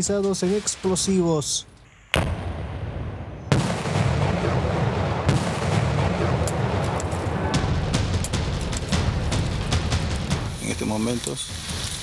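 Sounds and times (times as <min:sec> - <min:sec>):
explosion blasts: 0:02.1 - 0:10.6
scattered cracks: 0:05.3 - 0:12.0.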